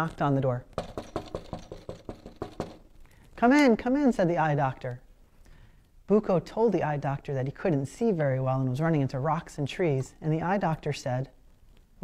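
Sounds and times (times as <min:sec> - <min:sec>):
knocking on a door: 0:00.8 - 0:02.9.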